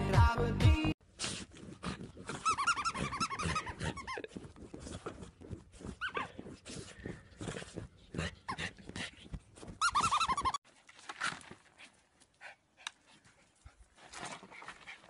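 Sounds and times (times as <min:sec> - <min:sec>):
dog whining: 0:02.2 - 0:06.9, 0:09.7 - 0:10.6
dog scratching at a duvet: 0:03.8 - 0:07.8.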